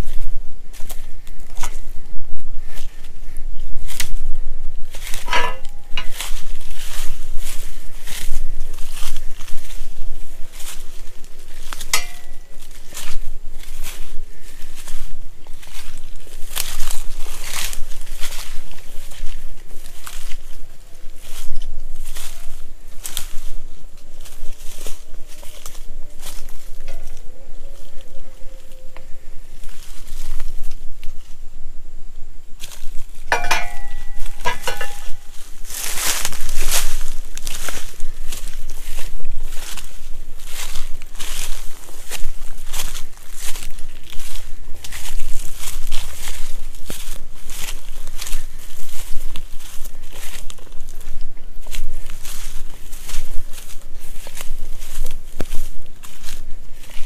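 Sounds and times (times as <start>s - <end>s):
footsteps crunching through dry grass: 0.0s - 57.0s
rapid clicks with ringing tone: 12.0s - 12.6s.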